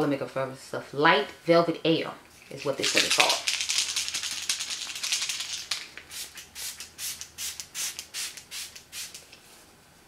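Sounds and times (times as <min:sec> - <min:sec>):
quick spray bursts: 0:03.9 - 0:09.2.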